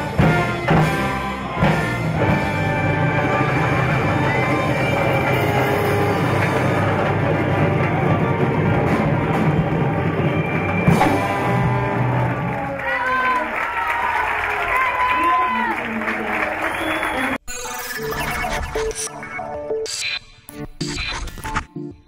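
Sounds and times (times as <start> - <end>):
orchestra with rock band: 0.0 - 13.2
audience cheering and shouting: 0.0 - 17.4
applause: 3.8 - 17.4.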